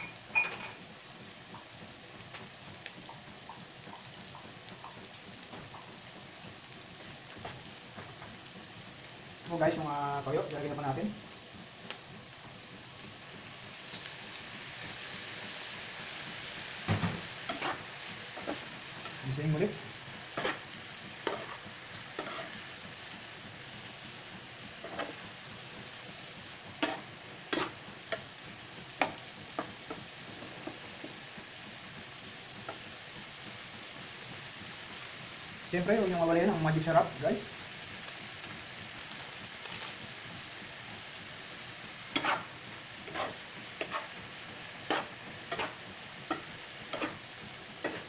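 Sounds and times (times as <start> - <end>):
food sizzling in frying pan: 0.0 - 48.0
metal spatula scraping pan: 17.5 - 18.7, 20.3 - 22.6, 26.8 - 28.2, 42.1 - 44.2, 44.8 - 48.0.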